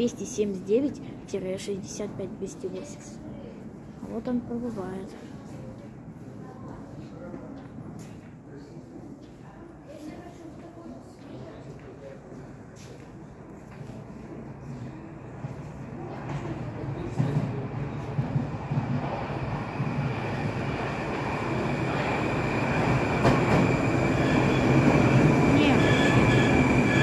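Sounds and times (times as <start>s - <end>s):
metro train running into station: 0.0s - 27.0s.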